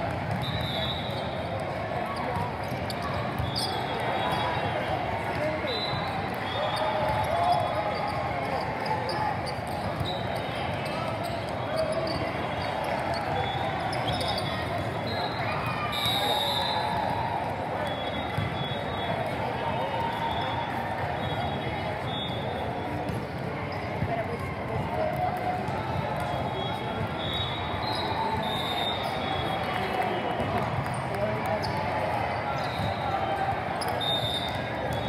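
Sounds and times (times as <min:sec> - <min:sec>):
chatter of spectators: 0:00.0 - 0:35.0
sneakers squeaking on court: 0:02.1 - 0:04.5.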